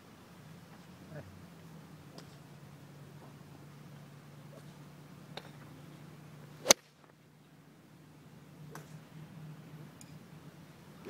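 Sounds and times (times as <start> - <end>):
golf club striking ball: 6.6 - 7.0, 8.7 - 9.0.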